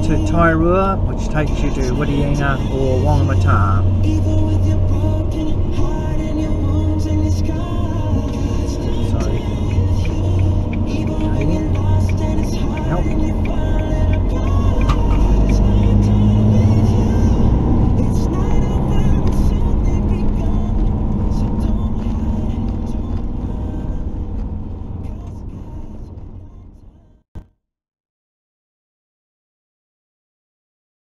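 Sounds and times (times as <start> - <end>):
music playing: 0.0 - 24.2
car engine and road rumble: 0.0 - 27.2.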